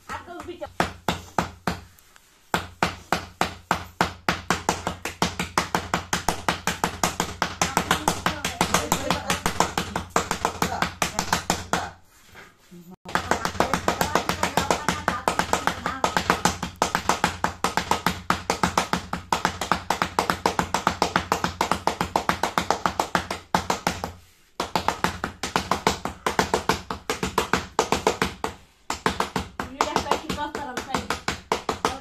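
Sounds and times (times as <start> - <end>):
hands slapping dough: 0.0 - 32.0.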